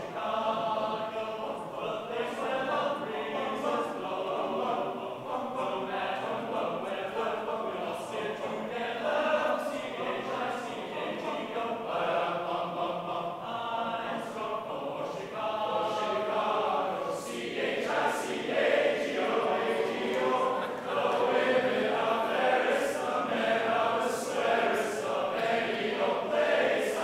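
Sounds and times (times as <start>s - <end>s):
choir of young men singing: 0.0s - 27.0s.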